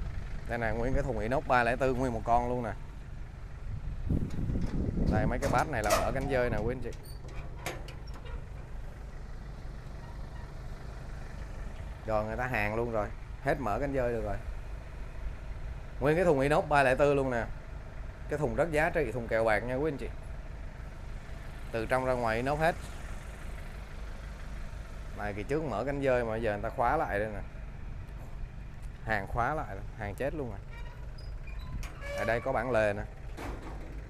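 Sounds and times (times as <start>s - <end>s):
vehicle engine idling: 0.0s - 34.0s.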